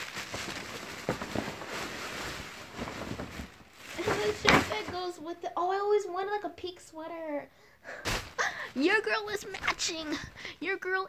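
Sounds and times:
clothing rustling and crackling: 0.0s - 5.3s, 8.0s - 11.0s.

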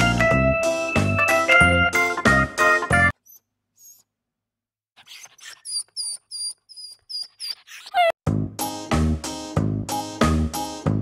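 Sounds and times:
high squeaky chirps: 5.1s - 8.2s
background music with steady beat: 8.3s - 11.0s.

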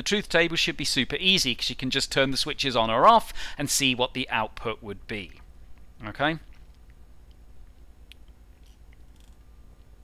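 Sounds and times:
steady low hum: 0.0s - 10.0s
computer mouse clicks: 8.1s - 9.4s.

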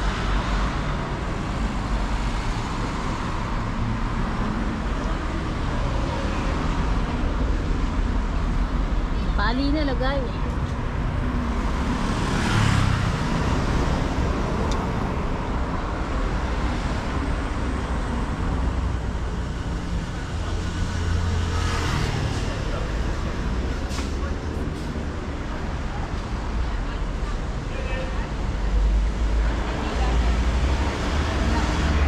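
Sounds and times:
rumble of cars: 0.0s - 32.0s.

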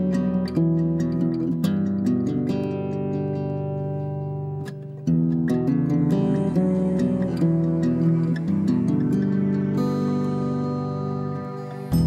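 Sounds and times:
acoustic guitar picking and strumming: 0.0s - 12.0s.

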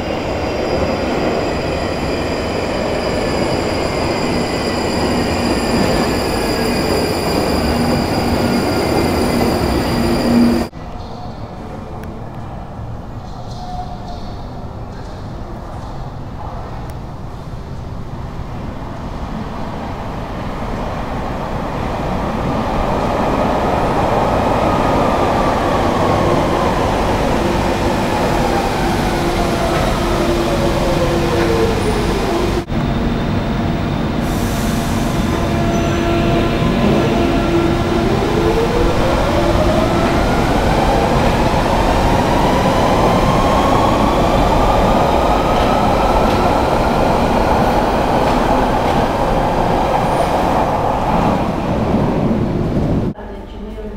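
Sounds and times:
heavy tunnel rumble: 0.0s - 53.9s.

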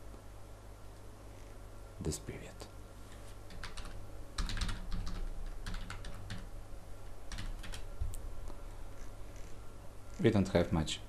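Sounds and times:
low electrical hum: 0.0s - 11.0s
computer keyboard typing: 3.5s - 6.5s, 7.3s - 7.9s.

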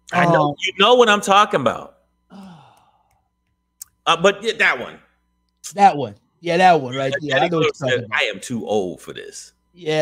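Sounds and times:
man sighing: 2.3s - 3.1s.

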